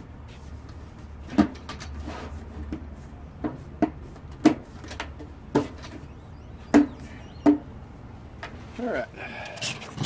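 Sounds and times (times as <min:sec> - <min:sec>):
sharp knocks with low ring: 0:06.6 - 0:07.7.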